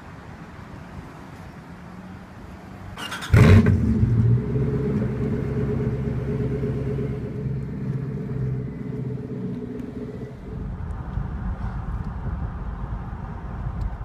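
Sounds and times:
low noisy rumble: 0.0 - 14.0
car engine idling: 3.3 - 11.0.

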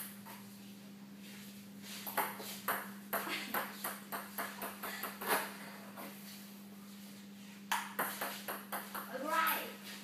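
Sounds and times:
table tennis ball bouncing: 2.1 - 5.5, 7.7 - 9.6.

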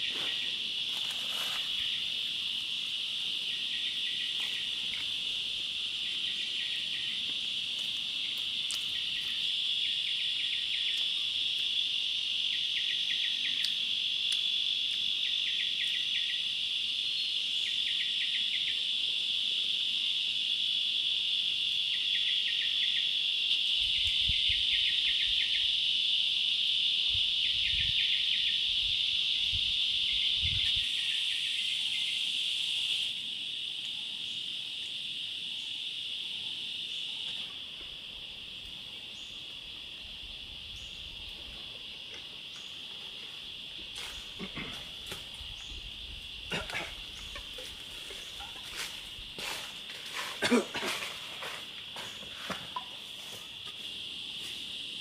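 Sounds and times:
insect pulsed trills: 0.0 - 55.0
insects droning: 0.0 - 55.0.

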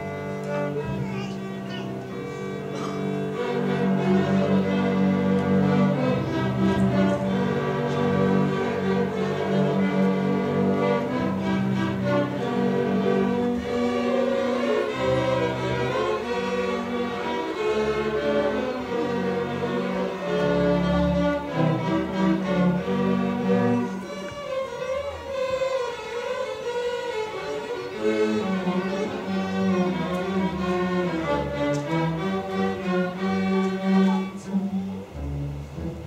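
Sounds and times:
string orchestra playing: 0.0 - 36.0.

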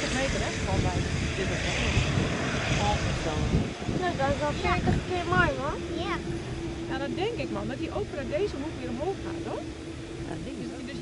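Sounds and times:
jet engines rolling past: 0.0 - 11.0
wind buffeting the microphone: 0.0 - 11.0.

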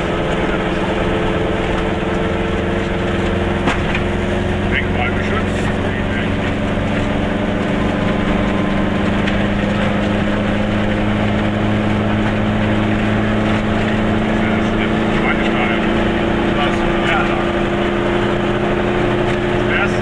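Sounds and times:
two-stroke car engine droning: 0.0 - 20.0.

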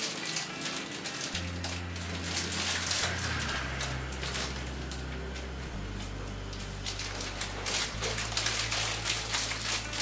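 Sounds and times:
cellophane crinkling: 0.0 - 10.0.

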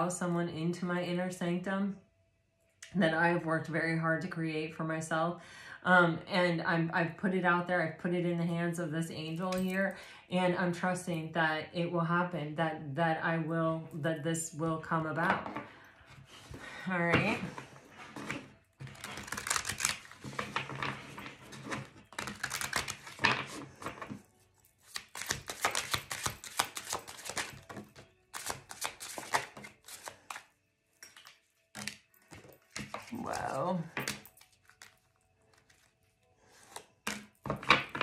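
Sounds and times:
cards being shuffled: 18.0 - 30.5, 31.1 - 38.0.

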